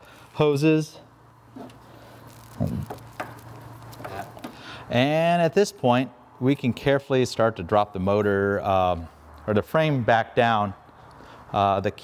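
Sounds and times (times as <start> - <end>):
steady low hum: 0.2 - 11.6.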